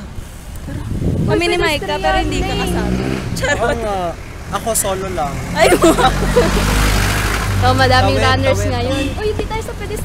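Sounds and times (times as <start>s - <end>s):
engine rumbling: 0.0s - 10.0s
people talking: 4.6s - 6.6s, 7.6s - 10.0s.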